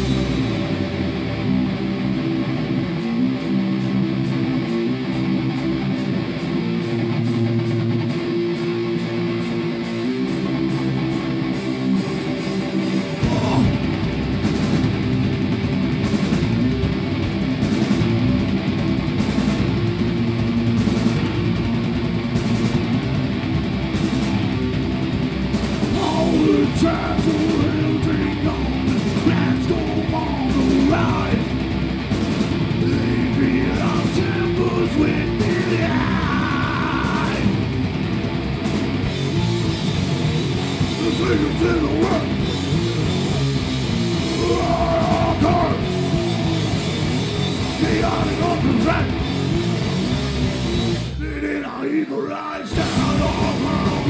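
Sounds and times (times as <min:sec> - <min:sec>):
electric bass: 0:00.0 - 0:51.9, 0:52.7 - 0:54.0
drum kit: 0:00.0 - 0:52.0, 0:52.7 - 0:54.0
distorted electric guitar: 0:00.0 - 0:54.0.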